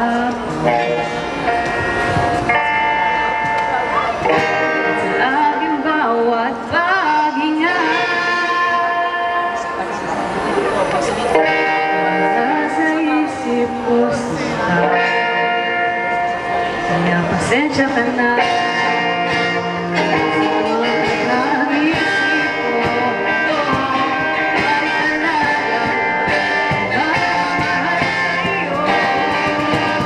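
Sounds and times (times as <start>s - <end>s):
person singing: 0.0s - 2.5s, 3.9s - 9.8s, 11.3s - 30.0s
guitar accompaniment: 0.0s - 30.0s
live band held chord ringing: 0.0s - 30.0s
saxophone long notes: 11.3s - 17.1s, 18.1s - 30.0s.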